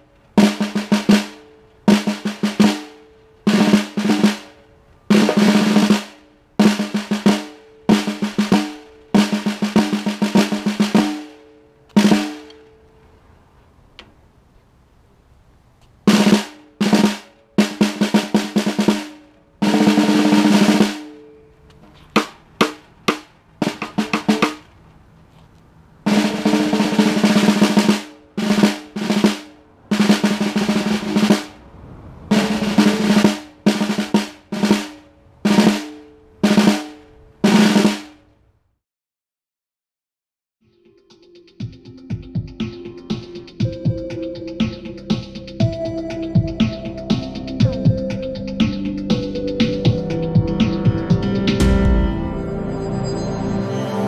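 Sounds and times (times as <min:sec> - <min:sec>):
snare drum rolls and strokes: 0:00.0 - 0:12.6, 0:16.1 - 0:21.2, 0:22.1 - 0:24.7, 0:26.1 - 0:38.3, 0:42.1 - 0:52.8
drum head ringing: 0:00.0 - 0:12.7, 0:16.1 - 0:24.7, 0:26.1 - 0:31.6, 0:32.3 - 0:38.2, 0:41.4 - 0:53.7.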